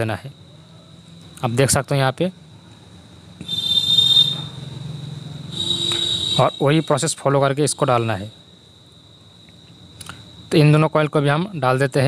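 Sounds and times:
insect trilling: 3.2 - 12.0.

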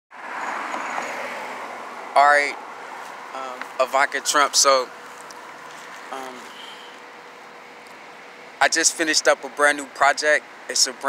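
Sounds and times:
road traffic hum: 0.1 - 11.0.

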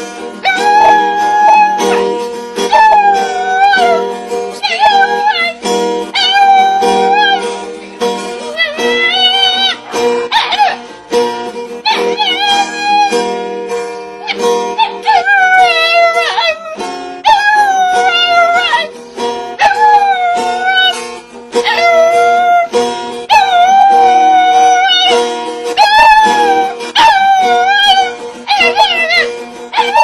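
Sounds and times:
woman singing high melody: 0.0 - 10.9, 11.7 - 13.4, 14.2 - 30.0.

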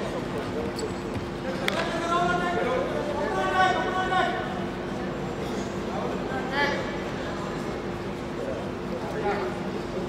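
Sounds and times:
steady hum: 0.0 - 10.0.

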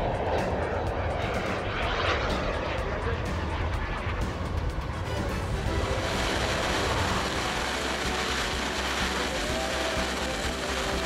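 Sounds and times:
model jet turbine rush: 0.0 - 11.0.

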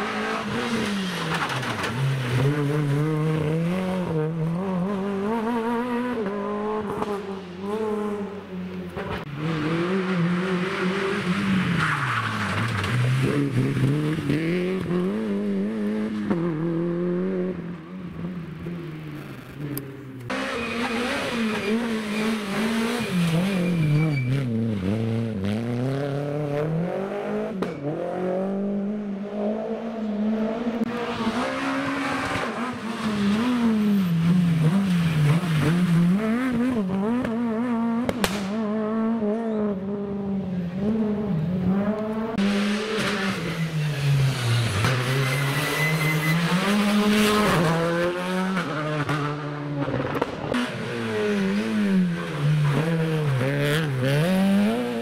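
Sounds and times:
rally car engines revving: 0.0 - 55.0.

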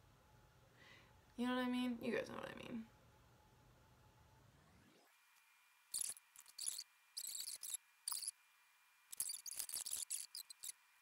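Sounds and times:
mascara tube scratchy squeaks: 5.9 - 8.4, 9.1 - 10.8.

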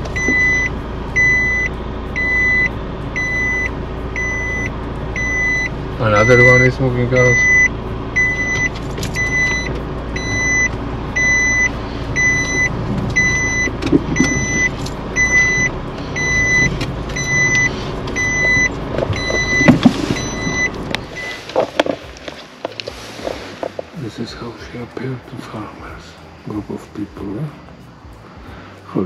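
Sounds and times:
car reverse warning beeps: 0.0 - 21.8
car engine idling hum: 0.0 - 29.0.

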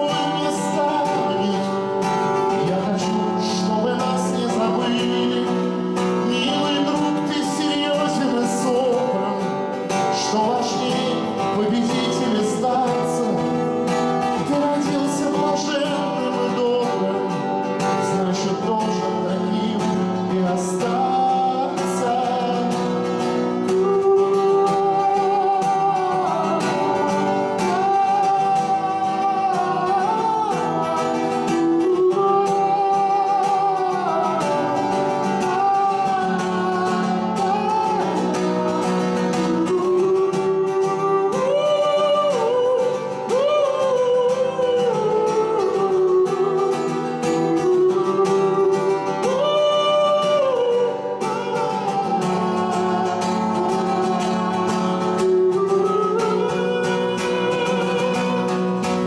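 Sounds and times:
acoustic guitar strumming: 0.0 - 59.0
man singing: 0.0 - 59.0.

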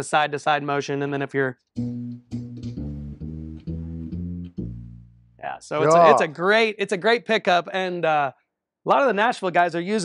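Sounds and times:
plucked upright bass notes: 1.8 - 6.2.

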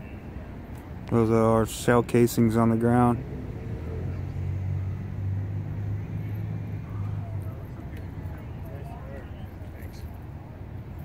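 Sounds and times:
car engine humming: 0.0 - 11.0
faint distant voices: 0.0 - 11.0.

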